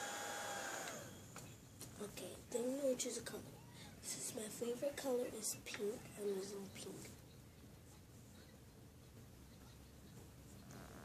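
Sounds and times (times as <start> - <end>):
small fan whining: 0.0 - 11.0.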